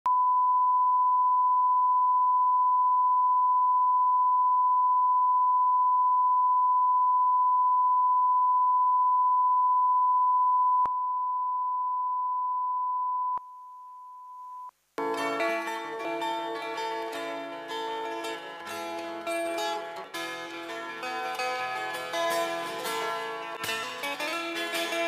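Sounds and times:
steady test tone beep: 0.1 - 14.7.

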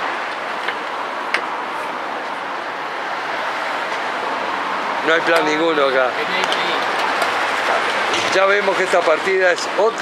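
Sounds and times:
street traffic noise: 0.0 - 10.0.

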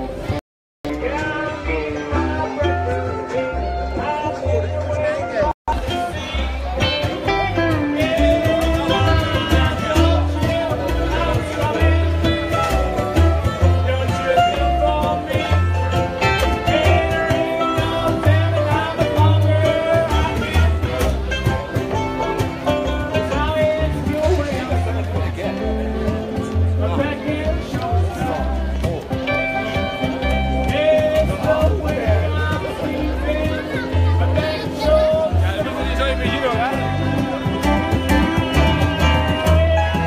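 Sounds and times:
electric guitars: 0.0 - 40.0
upright bass notes: 0.0 - 40.0
man singing: 0.8 - 40.0.

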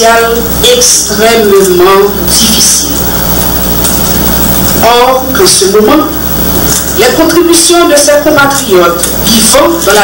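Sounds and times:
woman speaking: 0.0 - 3.2, 4.8 - 10.0
sound system hum and hiss: 0.0 - 10.0.

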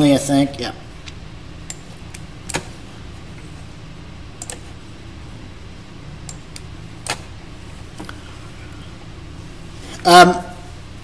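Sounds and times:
steady low hum: 0.0 - 11.0
computer clicks: 4.4 - 4.7, 6.2 - 7.2.

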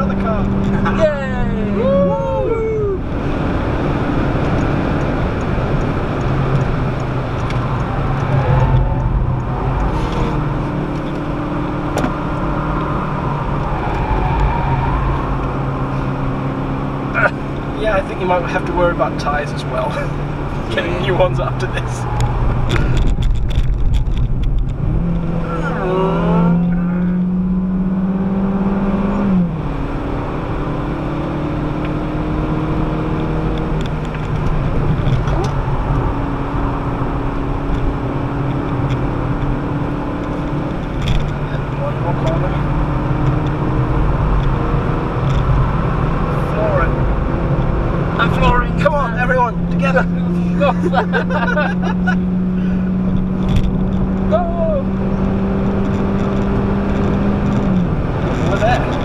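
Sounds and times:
car engine from inside cabin: 0.0 - 59.0
tyre and road noise: 0.0 - 59.0.

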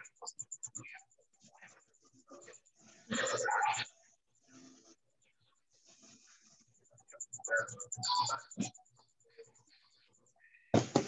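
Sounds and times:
faint scattered sounds: 0.0 - 11.0.

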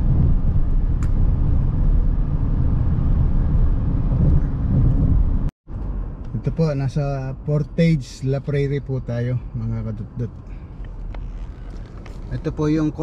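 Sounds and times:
car road noise at speed: 0.0 - 13.0.

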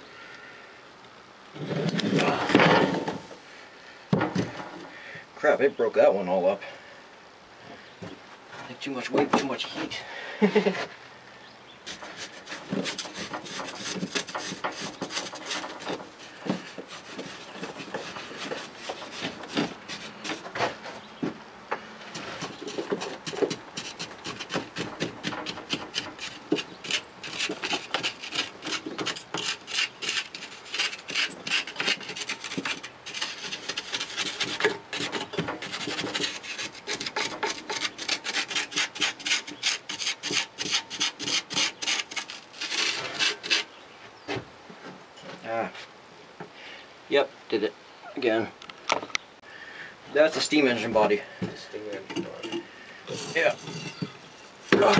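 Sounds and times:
tool scraping sand off metal: 11.9 - 20.7, 22.1 - 43.7, 50.4 - 54.9.

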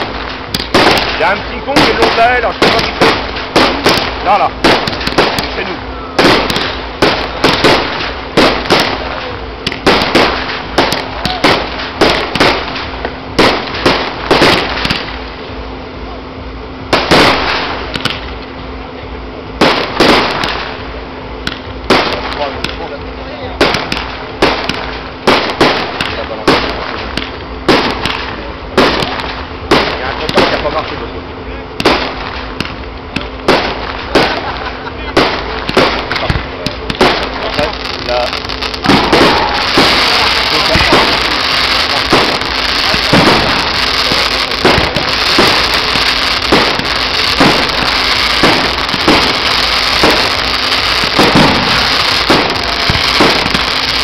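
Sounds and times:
fireworks bursting: 0.0 - 54.0.

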